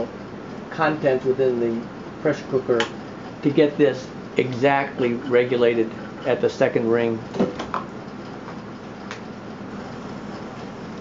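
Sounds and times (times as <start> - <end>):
gas stovetop hissing: 0.0 - 11.0.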